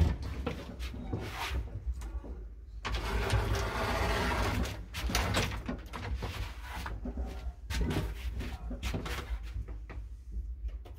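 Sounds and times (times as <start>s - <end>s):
lift gate rattling and scraping: 2.9s - 6.2s.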